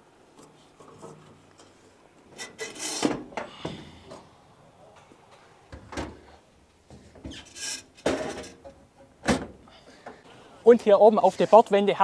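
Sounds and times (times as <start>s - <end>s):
metal panel scraping on stake: 2.4s - 3.2s.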